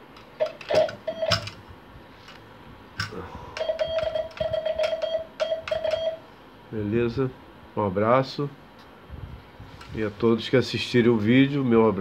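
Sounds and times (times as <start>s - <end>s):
telegraph key contacts clicking: 0.1s - 1.6s, 3.0s - 6.2s
morse code sidetone beeps: 0.4s - 1.4s, 3.6s - 6.3s.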